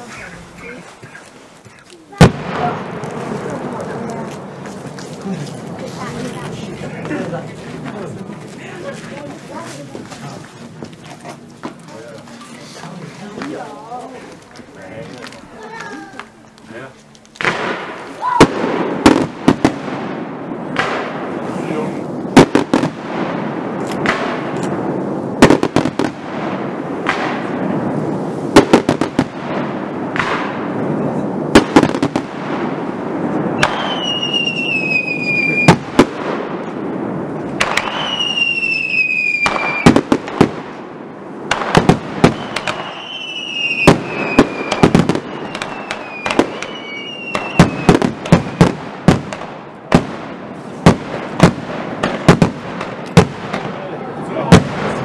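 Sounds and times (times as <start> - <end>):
fireworks bangs: 0.0 - 12.4, 17.3 - 55.0
crackling rumble: 0.0 - 33.9, 34.5 - 55.0
fireworks whistles: 33.5 - 35.9, 37.6 - 40.2, 41.7 - 48.8.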